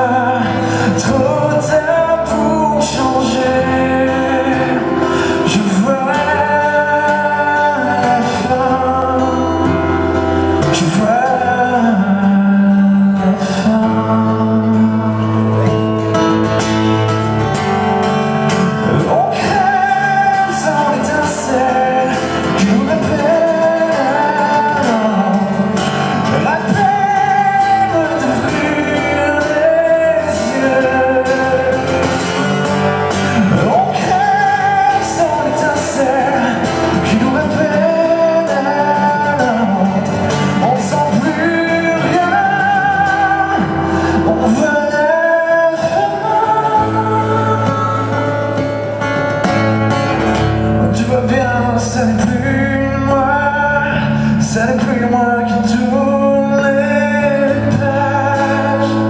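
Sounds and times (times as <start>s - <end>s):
man singing into microphone: 0.0s - 16.3s, 18.4s - 49.3s, 50.7s - 59.0s
acoustic guitar: 0.0s - 59.0s.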